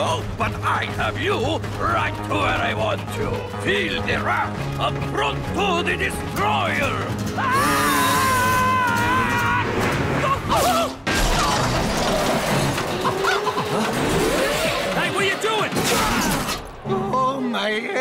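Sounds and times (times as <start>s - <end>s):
crashing and shattering: 11.0s - 16.7s.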